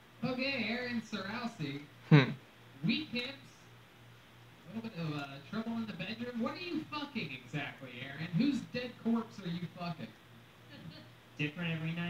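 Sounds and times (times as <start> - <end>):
faint low hum: 0.0 - 12.0
podcast voices talking: 0.2 - 3.8, 4.6 - 12.0.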